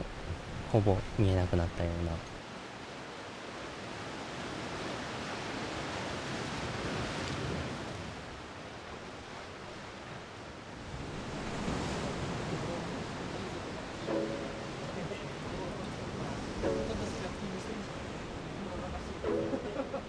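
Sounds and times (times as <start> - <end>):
surf washing against rocky shore: 10.8 - 20.0.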